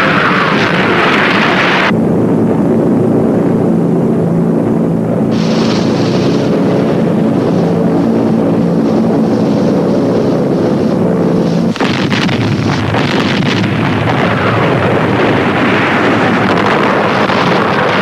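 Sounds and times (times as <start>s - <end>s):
boat engine drone: 0.0s - 18.0s
guns firing: 11.7s - 14.4s
shells exploding: 11.7s - 15.4s.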